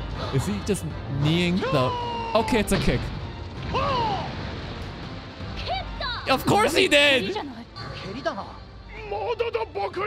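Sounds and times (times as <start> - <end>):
soundtrack music and noise: 0.0 - 10.0
character speaking: 5.6 - 8.4.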